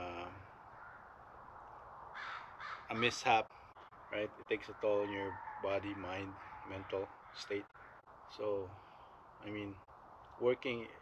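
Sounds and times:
crow cawing: 0.5s - 1.3s, 2.1s - 3.3s, 4.0s - 8.2s.

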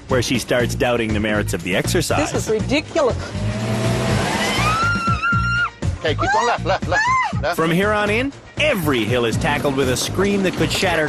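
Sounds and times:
engine revving hard: 3.2s - 5.1s
woman screaming: 4.4s - 7.5s.

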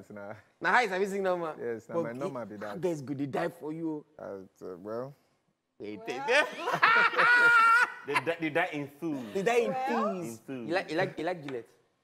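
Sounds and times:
people laughing: 6.1s - 10.2s
high-pitched laugh: 6.2s - 8.4s.

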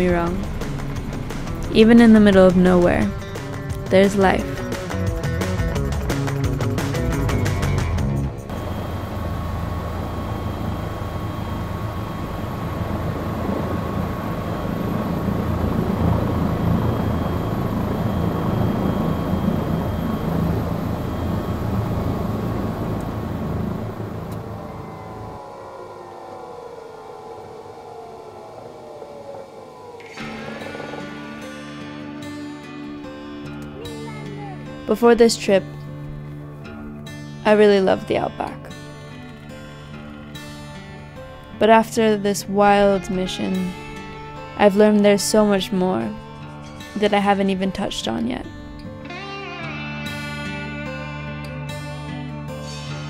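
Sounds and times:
background music: 0.0s - 13.8s, 30.0s - 53.0s
turbines winding down whine: 0.0s - 35.0s
helicopter rotor and turbine noise: 0.0s - 49.3s.

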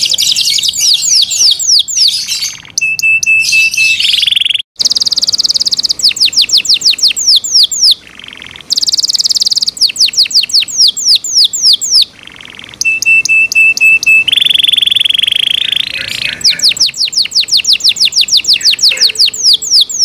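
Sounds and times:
canary singing: 0.0s - 20.0s.

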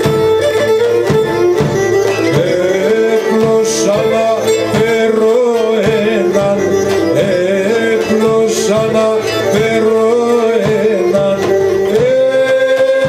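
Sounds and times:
drum: 0.0s - 13.0s
guitar: 0.0s - 13.0s
man singing: 2.1s - 13.0s.

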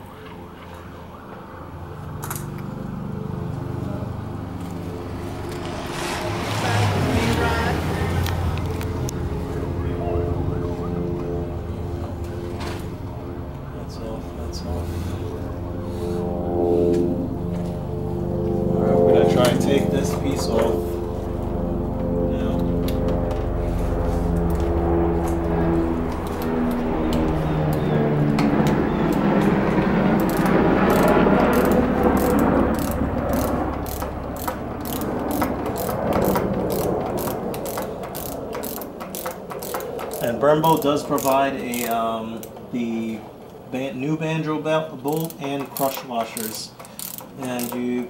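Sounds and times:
hand ratchet clicking: 30.2s - 42.6s, 45.0s - 48.0s.

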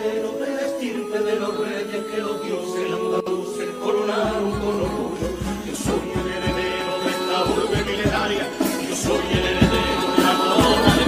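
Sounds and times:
chorus singing in harmony: 0.0s - 11.0s.

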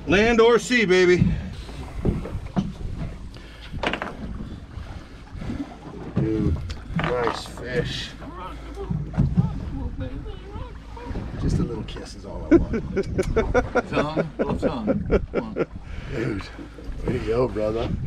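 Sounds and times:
wind noise on microphone: 1.2s - 4.6s, 12.5s - 13.9s, 17.1s - 18.0s.

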